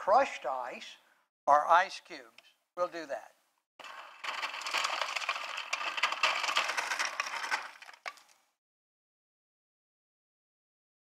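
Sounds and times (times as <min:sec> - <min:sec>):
crushed ice clattering into cup: 0:03.8 - 0:08.4.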